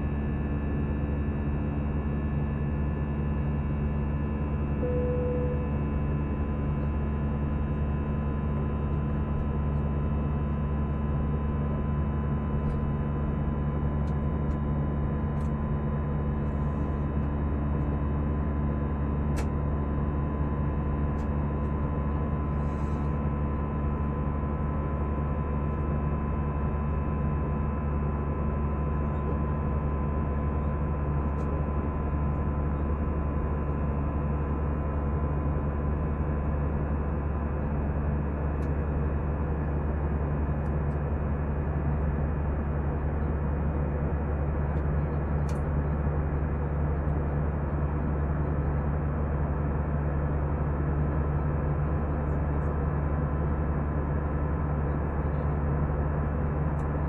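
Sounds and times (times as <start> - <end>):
airplane cabin drone: 0.0 - 57.0.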